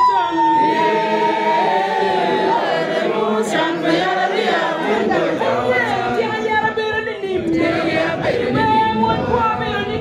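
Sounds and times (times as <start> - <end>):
congregation singing: 0.0 - 10.0.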